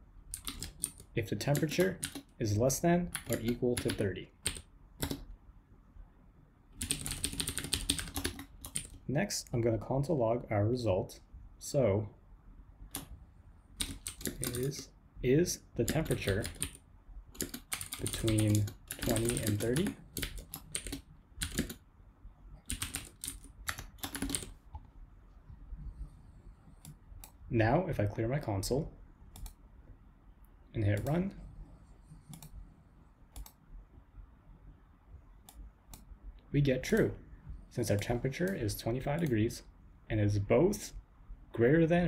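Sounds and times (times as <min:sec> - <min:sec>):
computer keyboard typing: 0:00.3 - 0:02.4, 0:03.1 - 0:05.3, 0:06.8 - 0:09.0, 0:13.8 - 0:14.8, 0:15.8 - 0:21.8, 0:22.6 - 0:24.7, 0:29.3 - 0:29.6, 0:32.2 - 0:32.6.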